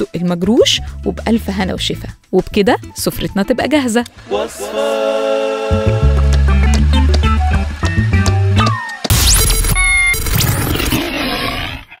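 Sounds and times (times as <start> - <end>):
big cat roar: 10.9 - 12.0.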